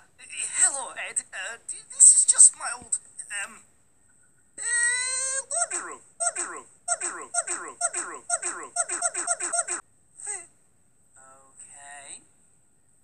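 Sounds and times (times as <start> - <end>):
high-pitched cartoon voice cry: 4.6 - 10.5
cartoon laughter: 4.7 - 9.8.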